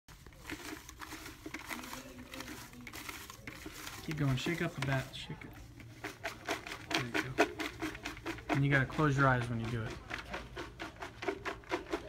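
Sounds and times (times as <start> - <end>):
paper tickets rustling in plastic bucket: 0.1 - 12.0.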